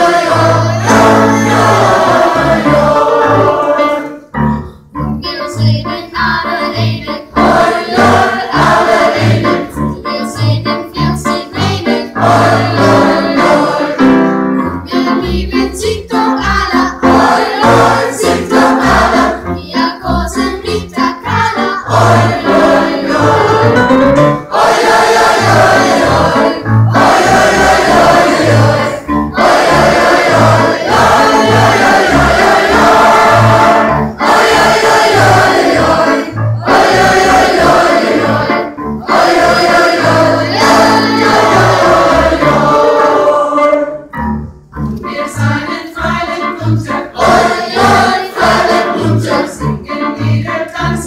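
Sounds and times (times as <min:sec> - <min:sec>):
choir singing folk song: 0:00.0 - 0:04.5, 0:05.7 - 0:44.1, 0:45.0 - 0:51.0
double bass notes: 0:00.0 - 0:51.0.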